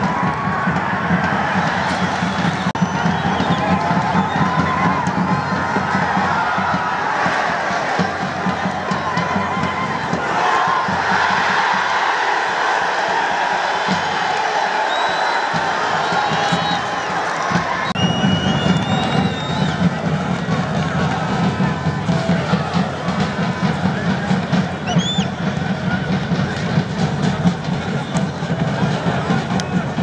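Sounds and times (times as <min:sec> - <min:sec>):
music: 0:00.0 - 0:30.0
stadium crowd cheering and shouting: 0:00.0 - 0:30.0.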